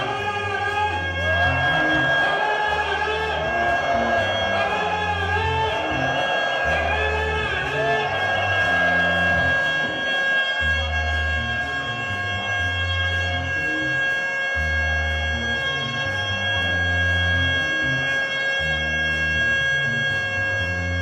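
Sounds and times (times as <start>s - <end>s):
bass line: 0.0s - 21.0s
saxophone long note: 0.0s - 21.0s.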